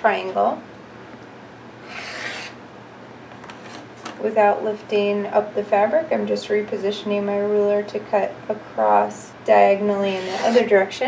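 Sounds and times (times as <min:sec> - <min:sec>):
rotary cutter rasping through fabric: 0:01.8 - 0:02.6, 0:10.1 - 0:10.7.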